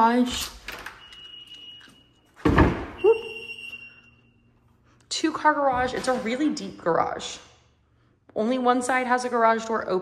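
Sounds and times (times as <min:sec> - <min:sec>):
door squeak: 0:00.7 - 0:04.3.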